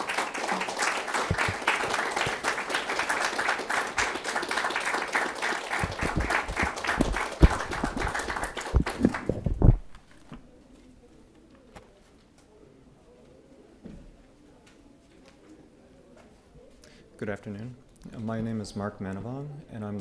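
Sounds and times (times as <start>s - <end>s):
audience applauding: 0.0s - 10.0s
low thumps: 5.8s - 10.0s.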